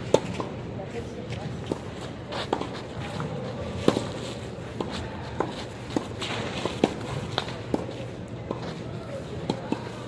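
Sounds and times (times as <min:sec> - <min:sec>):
shoes scuffing on clay: 0:01.3 - 0:08.9.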